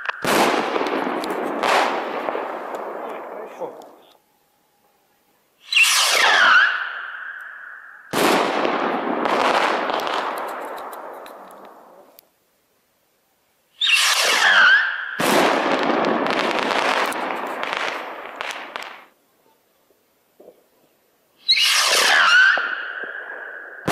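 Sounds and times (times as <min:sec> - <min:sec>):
rumble and crackle: 0:00.0 - 0:05.5, 0:07.3 - 0:12.6, 0:15.5 - 0:21.0
firework rocket whistling launch: 0:05.6 - 0:11.4, 0:13.8 - 0:19.1, 0:21.4 - 0:23.9.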